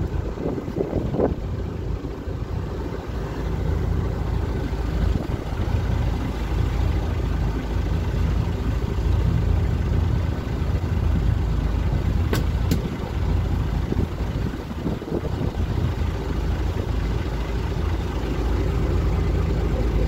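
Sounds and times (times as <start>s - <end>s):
boat engine idling: 0.0s - 20.0s.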